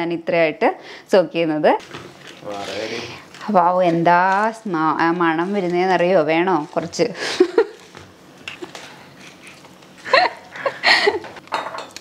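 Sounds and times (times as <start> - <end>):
hand mixing dried fruit: 1.8 - 10.2.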